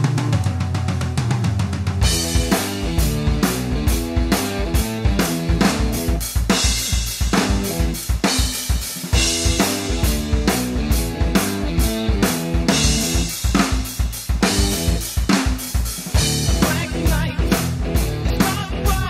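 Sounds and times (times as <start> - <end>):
low pitched backing riff: 0.0 - 8.0, 9.1 - 13.6, 16.1 - 19.0
drum kit hard-rock groove: 0.0 - 19.0.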